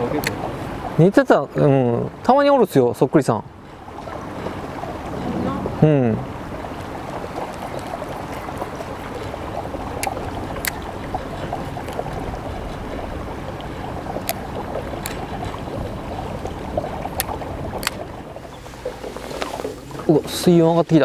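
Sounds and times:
boat engine rumble: 0.0s - 21.0s
sharp clicks: 17.2s - 18.0s.

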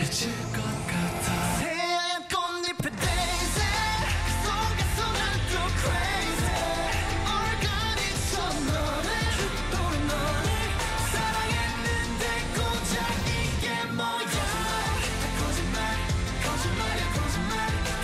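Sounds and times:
male group singing pop song: 0.0s - 18.0s
heavy bass beat: 2.9s - 13.7s, 14.4s - 18.0s.

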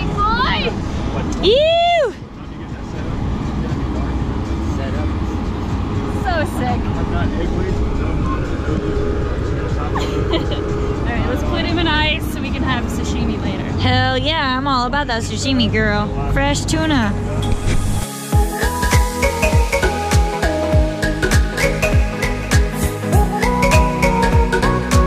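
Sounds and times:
faint voices talking: 0.0s - 17.8s
steady low rumble: 0.0s - 22.1s.

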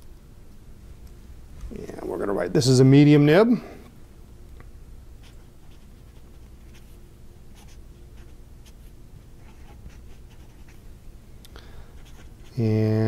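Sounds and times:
fountain pen scratching on paper: 5.2s - 7.0s, 7.6s - 10.8s, 12.0s - 12.6s.

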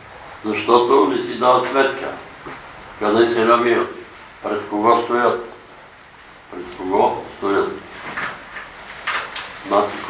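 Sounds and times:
person speaking: 0.4s - 5.7s, 6.5s - 8.1s, 9.6s - 10.0s.

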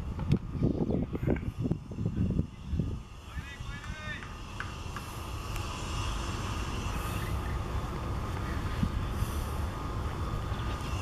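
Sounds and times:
low outdoor rumble: 0.0s - 11.0s
voices: 0.9s - 9.2s.

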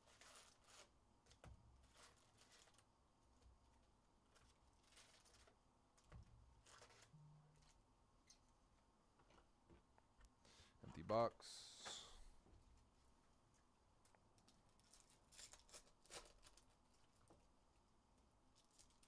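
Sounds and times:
foil packs crinkling: 0.0s - 2.9s, 4.3s - 7.1s, 14.4s - 17.2s, 18.6s - 19.0s.

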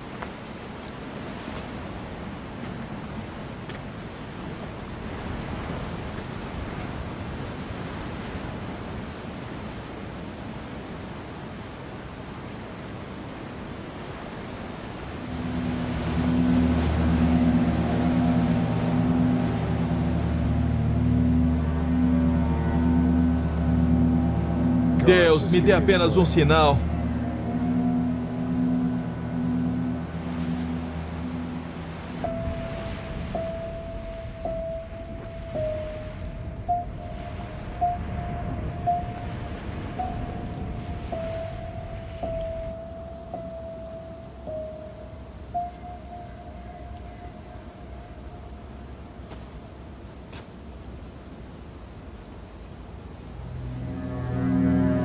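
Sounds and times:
low pulsing drone: 14.9s - 55.0s
thin high whine: 15.0s - 55.0s
wavering note: 15.1s - 55.0s.

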